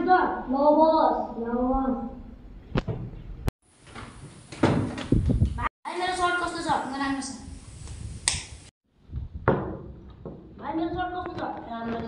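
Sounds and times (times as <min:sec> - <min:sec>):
loud knocks and bumps: 0:04.0 - 0:05.5, 0:09.4 - 0:10.7.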